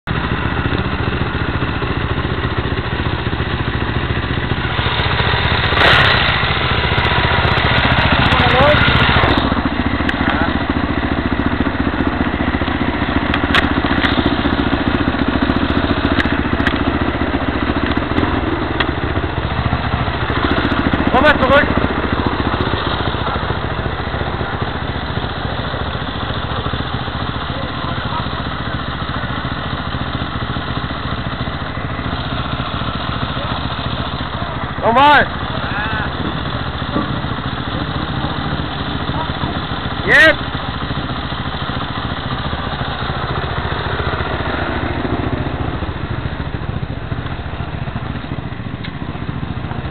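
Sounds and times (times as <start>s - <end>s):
motorcycle engines idling: 0.0s - 49.9s.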